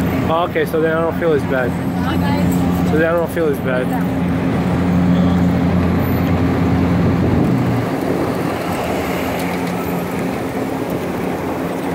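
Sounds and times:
traffic noise: 0:00.0 - 0:11.9
vehicle engine at low revs: 0:00.0 - 0:11.9.

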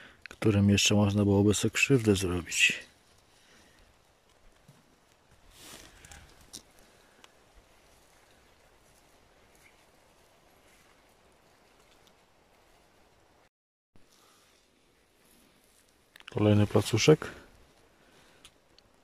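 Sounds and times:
faint outdoor hiss: 0:00.0 - 0:19.0
soft rustle: 0:01.4 - 0:19.0
faint clicks: 0:18.3 - 0:19.0.

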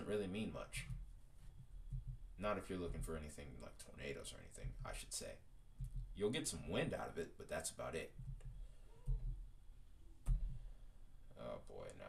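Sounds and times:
low knocks: 0:00.7 - 0:03.4, 0:04.3 - 0:05.1, 0:05.8 - 0:06.2.

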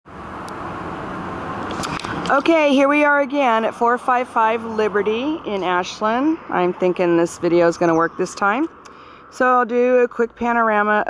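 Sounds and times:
outdoor rumble: 0:00.1 - 0:11.0.

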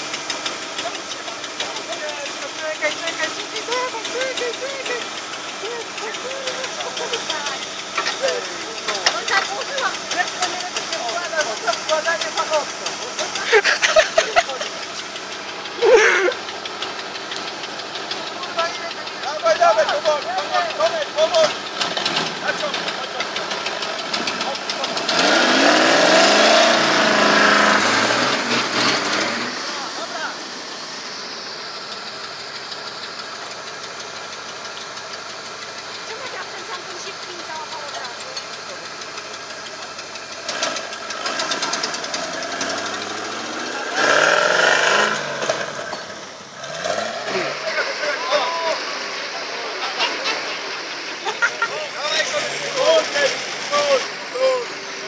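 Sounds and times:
off-road engine revving: 0:00.0 - 0:55.0
voices in background: 0:00.8 - 0:13.5, 0:18.2 - 0:25.2, 0:35.8 - 0:40.4, 0:46.8 - 0:55.0.

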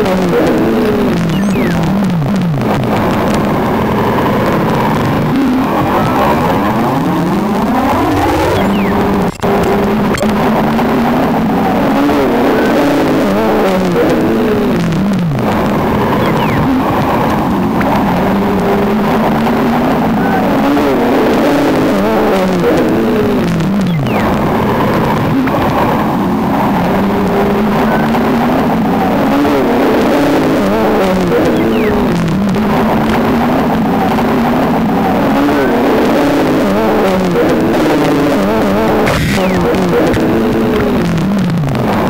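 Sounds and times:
electronic tones sliding in pitch: 0:01.3 - 0:01.9, 0:08.2 - 0:09.5, 0:16.2 - 0:16.7, 0:23.8 - 0:24.5, 0:31.4 - 0:32.2.

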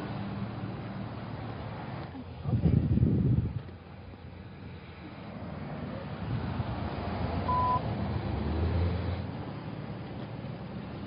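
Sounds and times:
idling vehicle engines rumbling: 0:00.0 - 0:11.0
short beep: 0:07.5 - 0:07.8.

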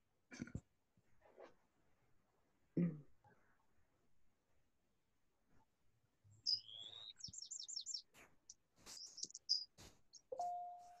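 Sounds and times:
songbirds chirping: 0:05.5 - 0:11.0.

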